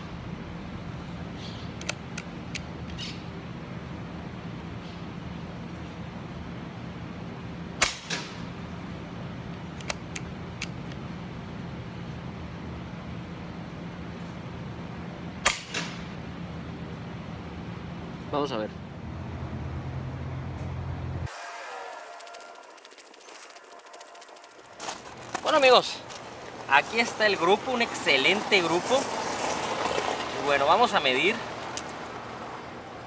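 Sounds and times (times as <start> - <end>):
low hum: 0.0 - 26.7
sharp cracks: 7.8 - 8.5, 15.4 - 16.2, 21.3 - 26.6.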